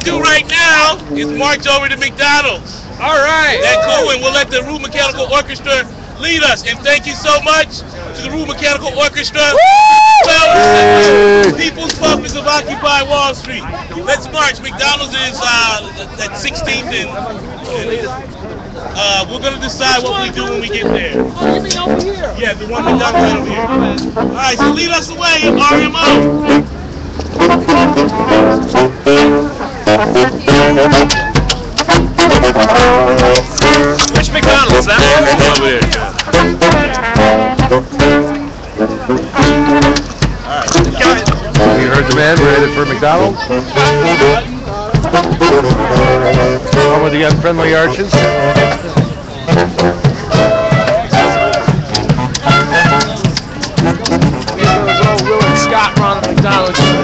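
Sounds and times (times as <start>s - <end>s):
brass band chords: 0.0s - 1.8s, 10.5s - 12.6s, 19.5s - 57.0s
crowd voices: 0.0s - 57.0s.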